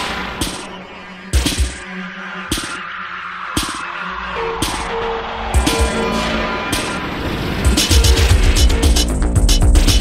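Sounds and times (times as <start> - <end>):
dark industrial techno: 0.0 - 10.0.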